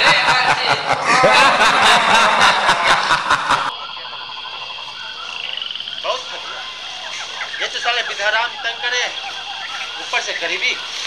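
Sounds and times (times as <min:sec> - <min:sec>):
frogs croaking: 0:00.0 - 0:11.0
steady high drone: 0:00.0 - 0:11.0.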